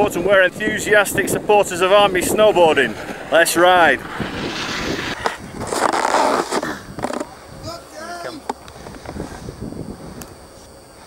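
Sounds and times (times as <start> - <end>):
snowboard scraping across snow: 2.3 - 6.7.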